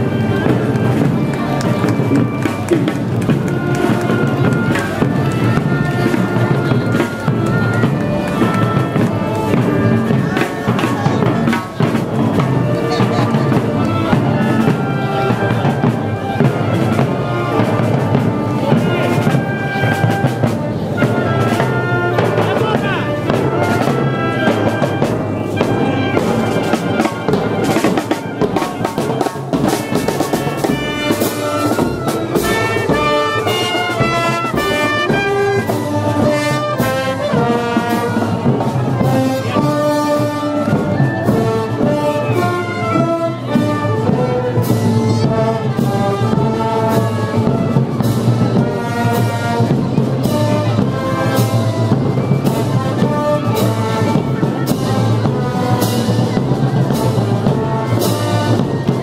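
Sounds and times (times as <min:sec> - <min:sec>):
snare and bass drum beats: 0:00.0 - 0:59.0
trumpets trombones and clarinets: 0:00.0 - 0:59.0.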